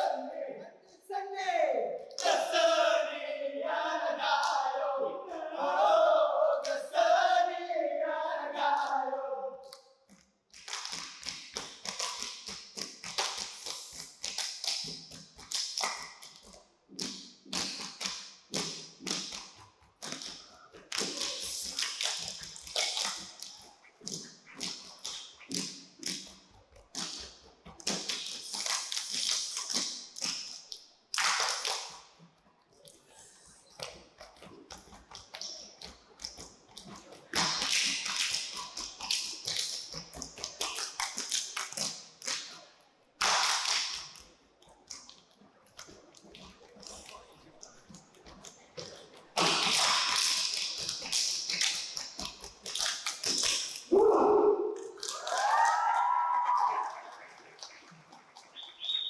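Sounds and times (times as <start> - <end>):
hands clapping and chest slapping: 9.6 - 32.2, 33.6 - 42.6, 43.2 - 59.0.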